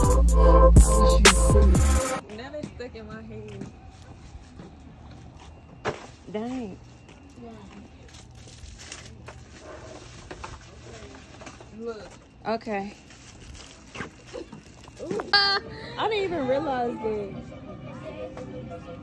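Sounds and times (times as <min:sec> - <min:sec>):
faint voices talking: 0:14.0 - 0:19.0.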